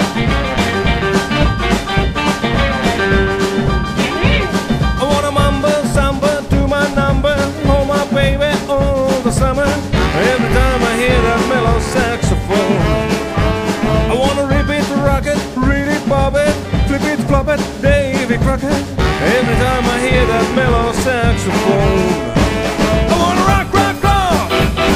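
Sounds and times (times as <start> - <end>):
saxophones: 0.0 - 5.8, 9.9 - 14.4, 19.0 - 23.6
rock and roll band playing: 0.0 - 24.9.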